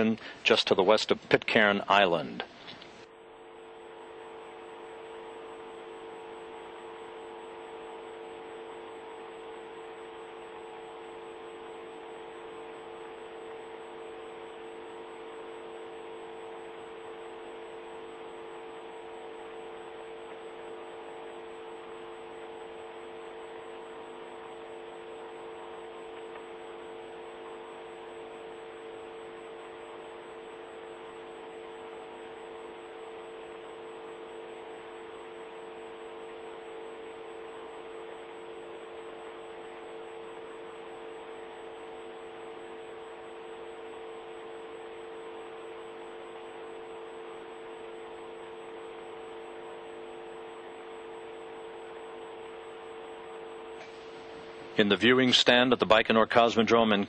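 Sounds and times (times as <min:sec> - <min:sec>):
steady multi-tone hum: 0:00.0 - 0:57.0.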